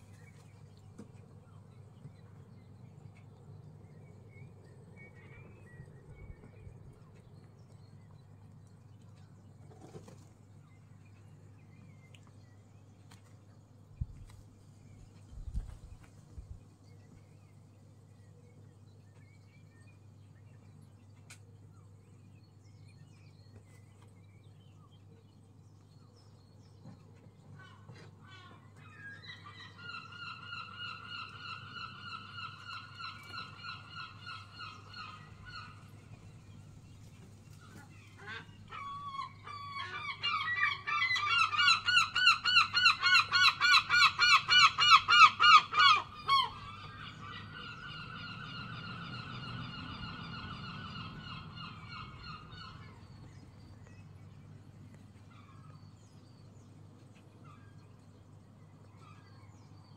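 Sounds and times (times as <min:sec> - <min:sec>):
gulls calling: 0:27.4 - 0:54.2.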